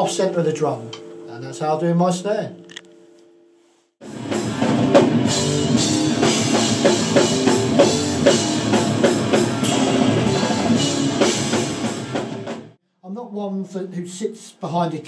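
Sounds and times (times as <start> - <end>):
sustained electric guitar: 4.0 - 12.7
drum kit beat: 4.0 - 12.8.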